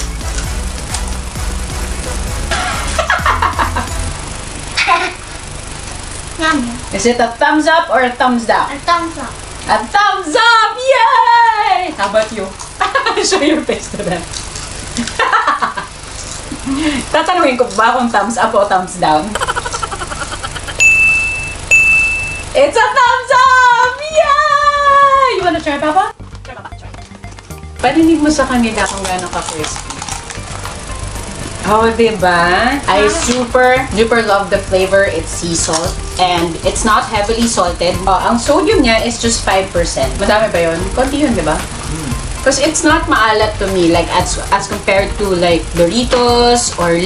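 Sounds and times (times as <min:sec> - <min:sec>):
music with low beat: 0:00.0 - 0:04.6, 0:26.2 - 0:47.0
high electronic dings: 0:20.8 - 0:22.6.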